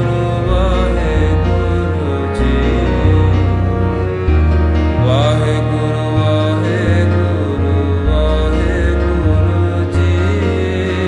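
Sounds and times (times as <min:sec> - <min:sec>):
person chanting: 0:00.0 - 0:11.0
sustained drone with bass notes: 0:00.0 - 0:11.0.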